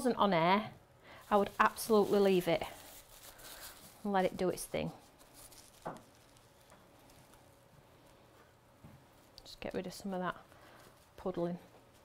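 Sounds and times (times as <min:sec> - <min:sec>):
tissue dabbing on paper: 0:01.2 - 0:12.0.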